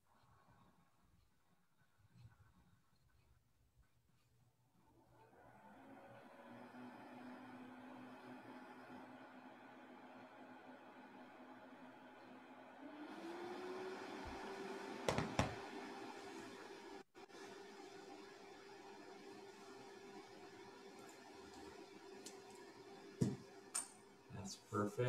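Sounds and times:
machine whir with hum: 4.8s - 24.4s.

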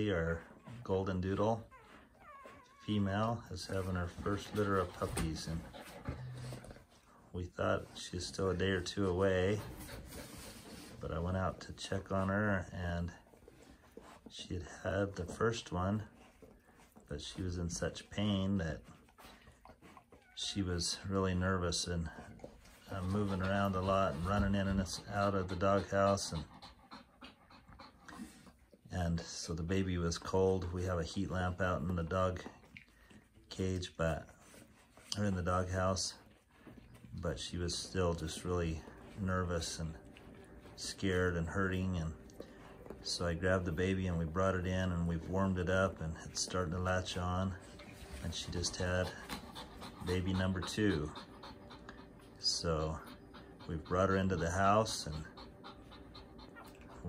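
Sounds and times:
dog panting quietly: 0.0s - 57.0s.

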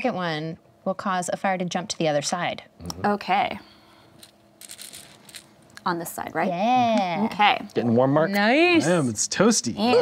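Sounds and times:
game stones rattling in a bag: 4.2s - 5.5s.

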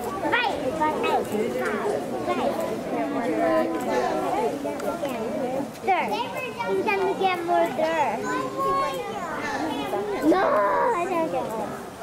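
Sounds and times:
people chattering: 0.0s - 12.0s
children calling out: 6.3s - 12.0s.

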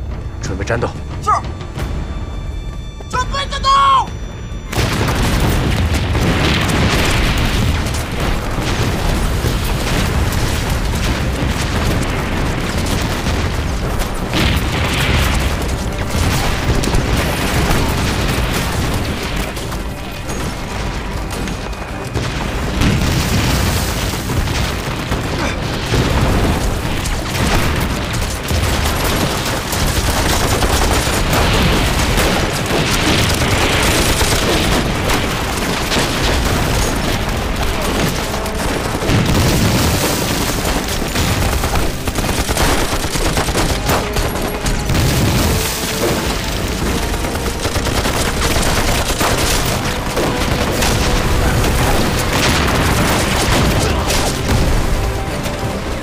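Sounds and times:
explosions: 4.6s - 56.0s
rifle and machine-gun fire: 4.7s - 56.0s.

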